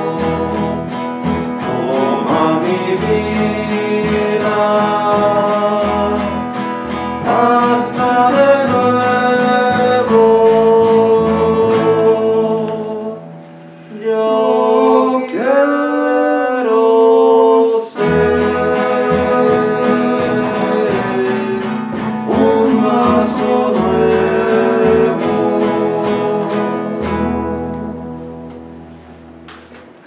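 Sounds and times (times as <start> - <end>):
person singing: 0.0 - 1.0, 1.6 - 27.8
upright double bass: 0.0 - 13.4, 18.0 - 29.5
acoustic guitar strumming: 0.0 - 16.5, 18.0 - 30.0.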